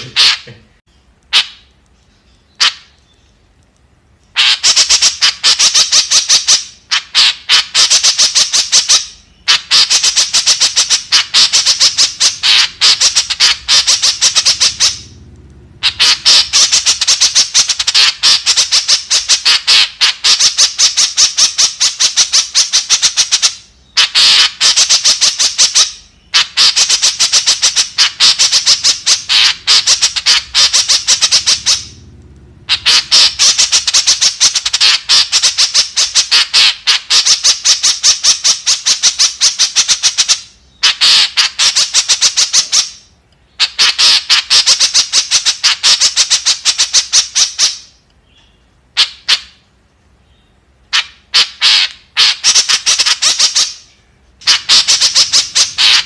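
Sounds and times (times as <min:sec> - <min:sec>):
bird harsh rapid chattering: 0:00.0 - 0:00.6, 0:01.3 - 0:01.7, 0:02.4 - 0:03.0, 0:04.3 - 0:48.0, 0:49.0 - 0:49.7, 0:50.9 - 0:56.0.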